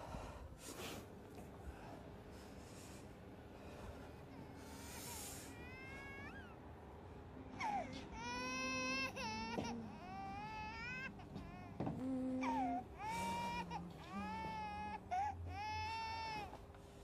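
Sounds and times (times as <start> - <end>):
infant crying: 7.6 - 16.6.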